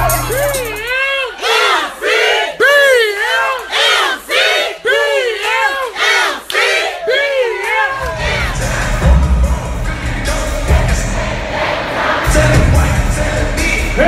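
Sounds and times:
music with bass line: 0.0 - 0.9, 8.1 - 11.5, 12.2 - 14.0
crowd chanting: 0.0 - 14.0.

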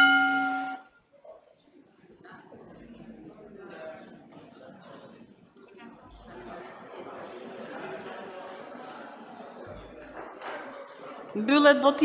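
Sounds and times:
electronic bell-like chime: 0.0 - 0.8.

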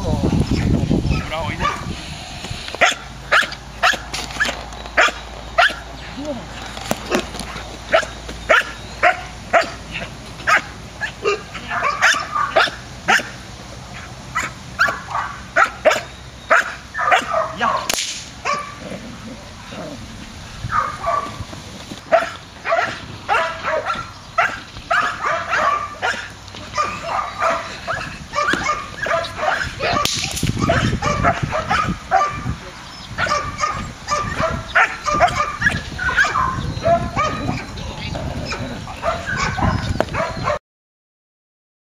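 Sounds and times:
dog barking in quick bursts: 2.8 - 5.8, 10.5 - 13.4, 14.4 - 18.8, 22.1 - 32.6, 33.2 - 37.6, 39.0 - 40.6.

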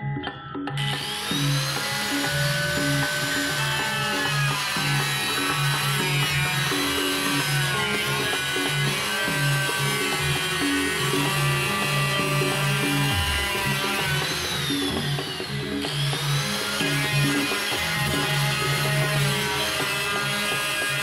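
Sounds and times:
background music with steady beat: 0.0 - 21.0
angle grinder cutting plastic: 0.8 - 21.0.

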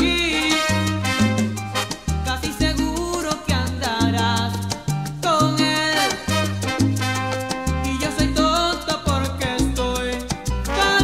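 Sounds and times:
man singing: 0.0 - 1.2, 2.2 - 7.1, 7.7 - 11.0
salsa music with deep bass: 0.0 - 11.0.

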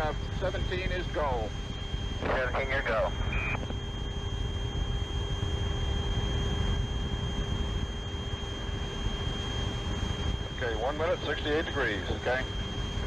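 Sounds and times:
radio rumble and hiss: 0.0 - 3.8, 10.4 - 13.0
short radio beep: 2.3 - 3.6.

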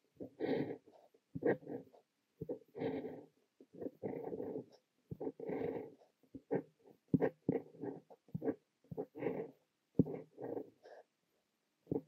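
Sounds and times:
fountain pen scratching on paper: 0.2 - 11.1.

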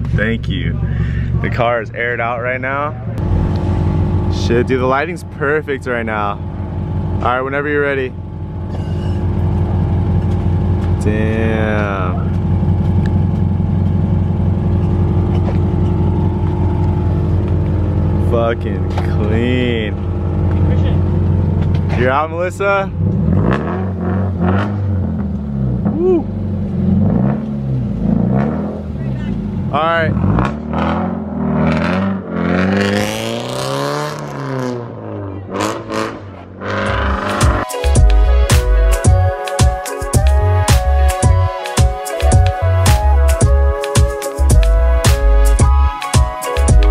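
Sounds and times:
car engine droning steadily: 0.0 - 39.4.

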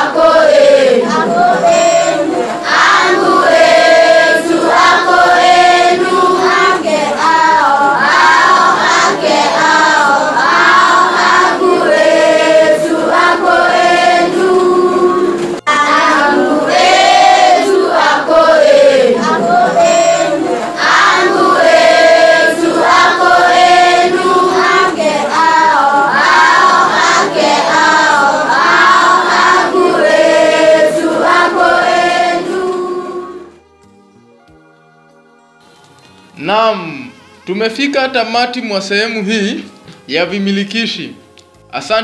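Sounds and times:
voices singing: 0.0 - 33.6.

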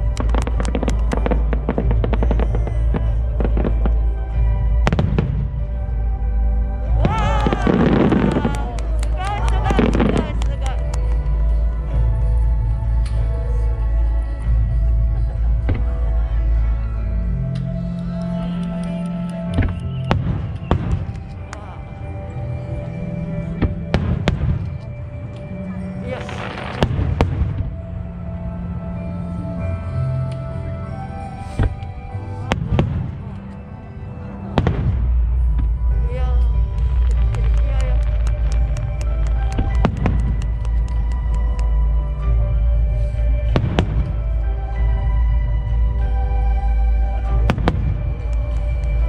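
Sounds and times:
fireworks bangs: 0.0 - 5.6, 7.0 - 11.0, 36.8 - 41.1
fireworks crackling: 0.0 - 6.1, 6.8 - 12.1, 17.6 - 27.9, 31.4 - 44.9, 46.6 - 49.0
music with sustained tones: 0.0 - 49.0.

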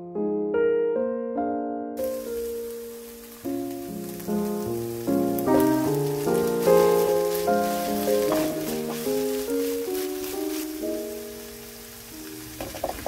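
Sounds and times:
background music: 0.0 - 13.0
vegetables sizzling in a frying pan: 2.0 - 13.0.

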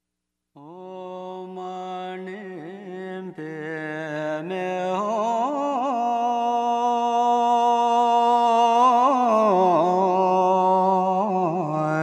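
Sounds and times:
person chanting long notes: 9.5 - 12.0.

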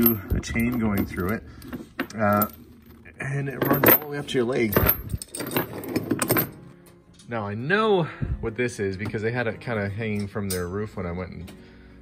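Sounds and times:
iron chain clinking and rattling: 0.0 - 7.4.

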